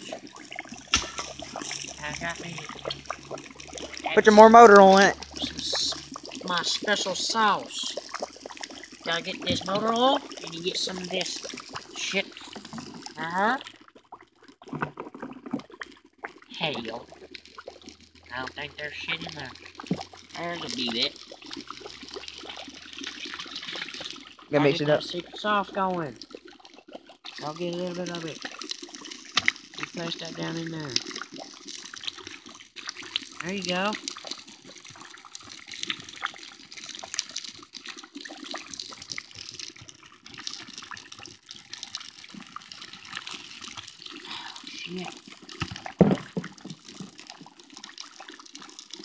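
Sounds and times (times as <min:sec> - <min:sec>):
liquid sizzling and popping: 0:00.0 - 0:49.0.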